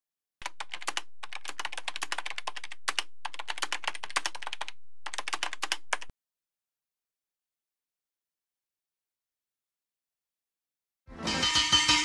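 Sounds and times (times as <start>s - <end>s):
keyboard typing: 0.4s - 6.1s.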